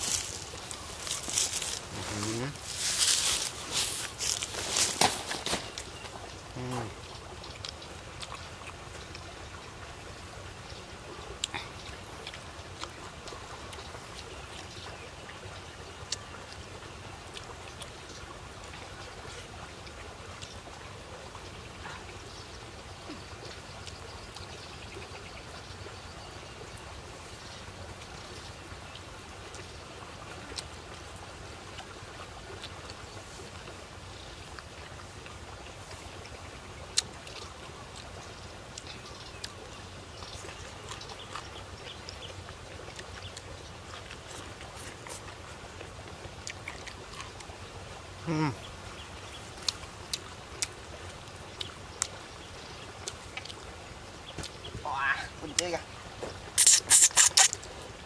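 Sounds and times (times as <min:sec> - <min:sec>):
low outdoor background noise: 0:00.0 - 0:58.0
chewing and lip-smacking: 0:07.5 - 0:09.3, 0:11.4 - 0:14.7, 0:36.9 - 0:39.6, 0:40.2 - 0:47.6, 0:49.6 - 0:50.8, 0:51.6 - 0:52.2, 0:53.0 - 0:53.7, 0:56.6 - 0:57.8
small wet clicks: 0:36.9 - 0:47.7, 0:49.5 - 0:54.7, 0:56.5 - 0:57.8.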